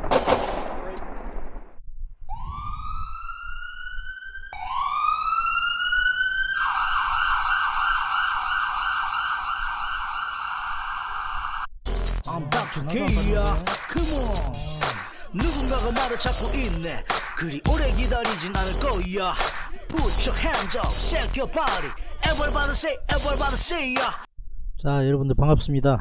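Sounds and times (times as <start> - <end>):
siren wailing and yelping: 2.3 - 11.7.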